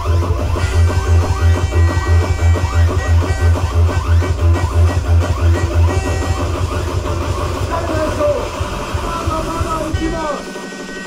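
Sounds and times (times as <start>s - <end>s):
loud club music: 0.0s - 11.0s
pounding bass beat: 0.0s - 11.0s.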